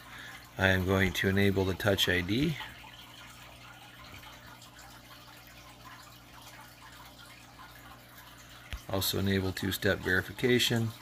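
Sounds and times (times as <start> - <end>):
water trickling and dripping: 0.0 - 11.0.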